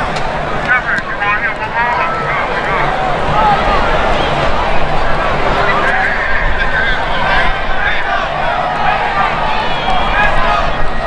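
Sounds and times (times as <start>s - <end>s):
many voices shouting together: 5.6s - 11.0s.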